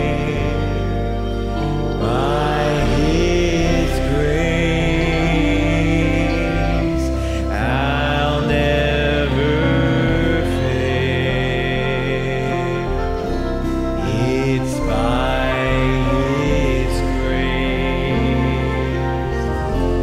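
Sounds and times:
man singing a slow hymn: 0.0s - 20.0s
sustained instrumental accompaniment: 0.0s - 20.0s.

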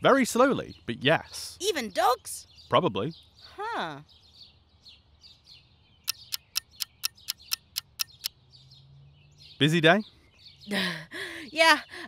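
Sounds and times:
faint birdsong: 0.0s - 12.0s
sharp evenly spaced ticks: 6.0s - 8.4s.

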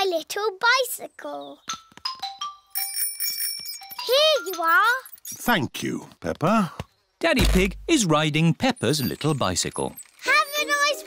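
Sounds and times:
bicycle bell ringing: 2.0s - 5.2s, 8.7s - 11.0s
light cartoon music: 8.8s - 11.0s.

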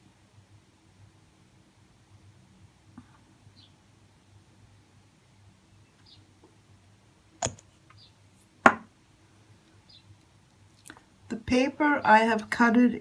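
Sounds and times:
hard objects knocking on tabletop: 8.6s - 8.9s.

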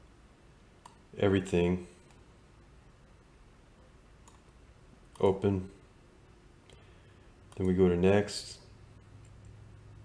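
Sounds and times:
computer mouse click: 0.8s - 1.0s, 4.2s - 4.5s, 7.5s - 7.8s.

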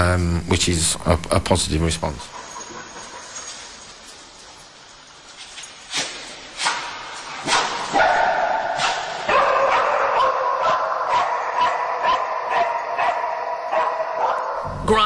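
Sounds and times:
dog barking sharply: 7.4s - 14.5s.

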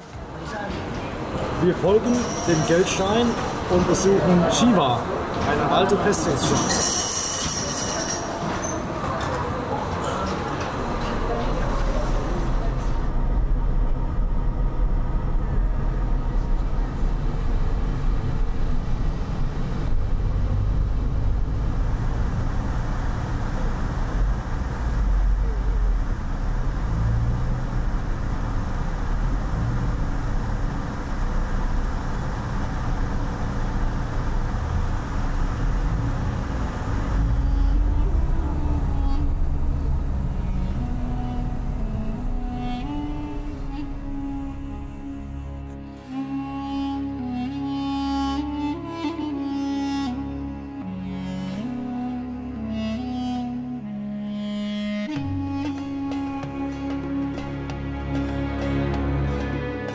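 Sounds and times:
car engine and tyre rumble: 8.8s - 53.9s
music: 37.2s - 59.9s.

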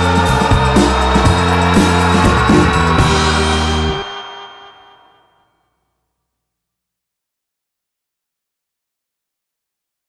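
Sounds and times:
instrumental pop-rock band: 0.0s - 4.8s
drums and cymbals: 0.0s - 5.1s.

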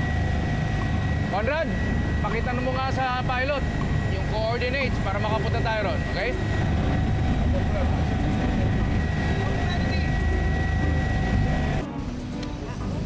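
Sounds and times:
aircraft engine rumble in cabin: 0.0s - 13.0s
thin steady whine: 0.0s - 13.0s.

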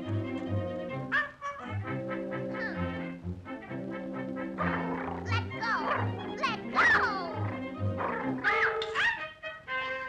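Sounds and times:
cartoon orchestra score: 0.0s - 10.0s
puppy yipping: 1.1s - 1.7s, 8.0s - 9.2s.

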